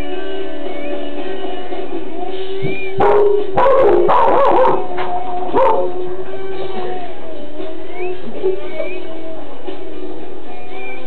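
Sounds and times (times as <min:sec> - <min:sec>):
background music: 0:00.0 - 0:11.0
dog barking loudly: 0:03.0 - 0:04.9, 0:05.6 - 0:05.9.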